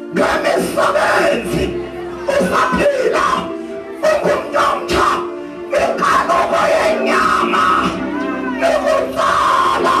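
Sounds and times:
congregation and choir singing: 0.0s - 3.3s.

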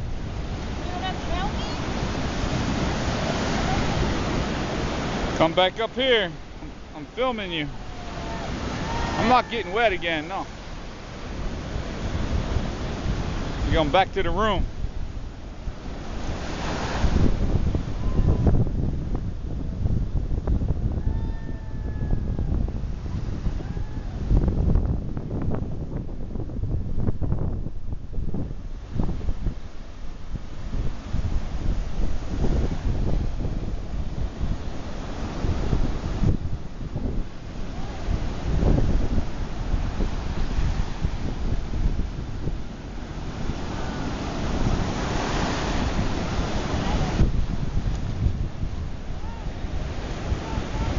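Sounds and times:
sea surf breaking: 0.0s - 50.9s
wind buffeting microphone: 0.0s - 50.9s.

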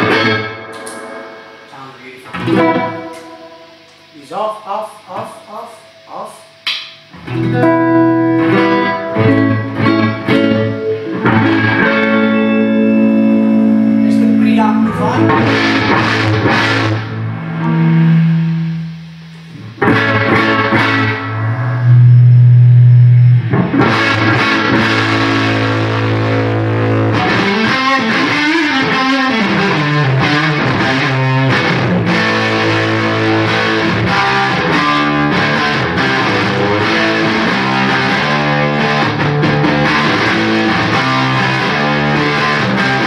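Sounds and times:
distorted electric guitar: 0.0s - 43.0s.

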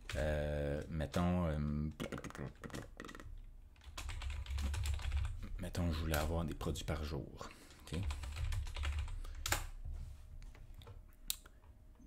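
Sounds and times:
computer keyboard typing: 1.6s - 5.4s, 7.9s - 9.7s.

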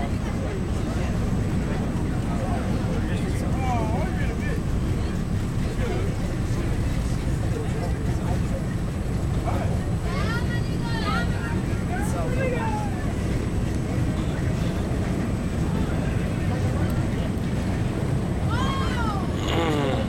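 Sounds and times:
subway wheels rumbling on track: 0.0s - 20.0s.

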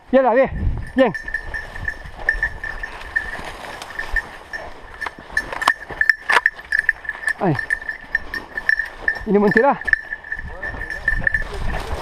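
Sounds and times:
thin high ringing: 0.6s - 11.7s
footsteps in undergrowth: 1.1s - 12.0s.

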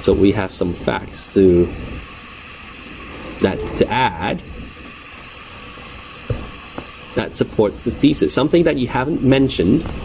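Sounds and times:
low room and microphone hiss: 0.0s - 4.8s.

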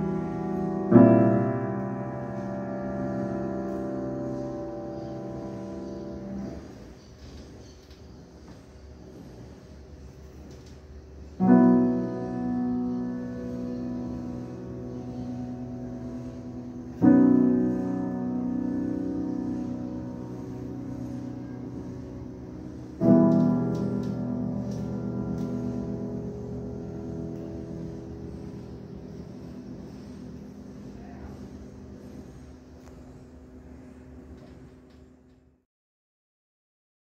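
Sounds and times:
grand piano chords: 0.0s - 7.2s, 11.3s - 35.1s.

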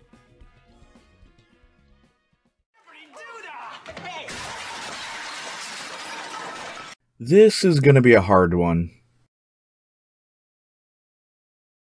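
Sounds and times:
man yelling: 2.8s - 4.7s
crockery breaking: 3.8s - 7.0s.

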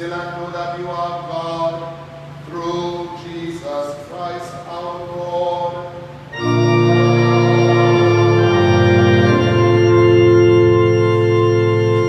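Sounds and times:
low drone: 6.0s - 12.0s.

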